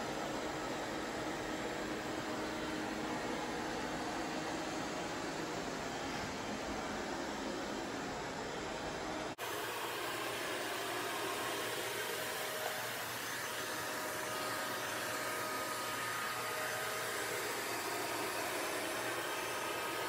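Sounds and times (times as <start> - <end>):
robot vacuum running on carpet: 9.4 - 20.0.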